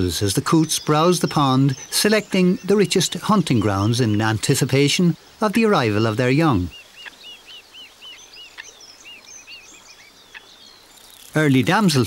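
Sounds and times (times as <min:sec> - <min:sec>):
faint high bird chirps: 0:00.0 - 0:12.0
small bird singing: 0:00.0 - 0:12.0
soft outdoor hiss: 0:00.0 - 0:12.0.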